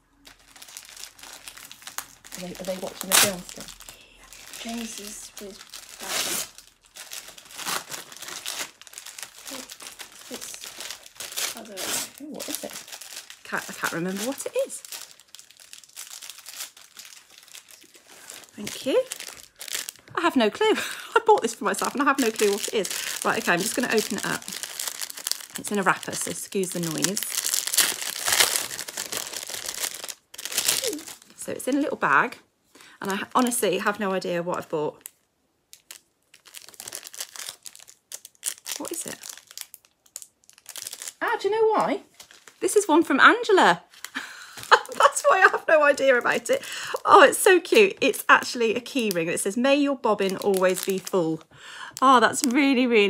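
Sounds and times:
paper wrapping tearing and crumpling: 0.2s - 20.1s, 21.3s - 31.9s, 35.0s - 42.9s, 43.9s - 47.8s, 50.1s - 51.4s.

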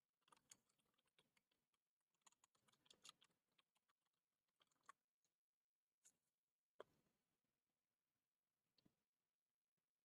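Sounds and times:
faint keyboard typing: 0.0s - 5.3s.

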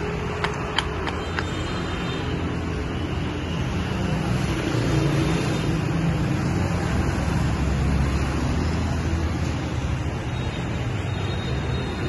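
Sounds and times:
street traffic noise: 0.0s - 12.0s.

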